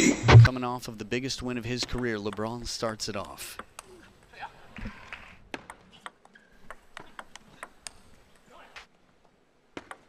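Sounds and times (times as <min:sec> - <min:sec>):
table tennis ball clicking: 0:01.8 - 0:02.5, 0:05.5 - 0:08.5, 0:09.8 - 0:10.0.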